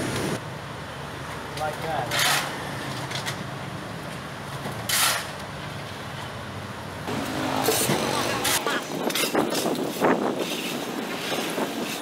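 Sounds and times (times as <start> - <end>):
street traffic: 0.0 - 12.0
shovel scraping on rubble: 2.0 - 3.4, 4.8 - 5.4, 7.3 - 12.0
motorbikes passing: 7.1 - 9.1.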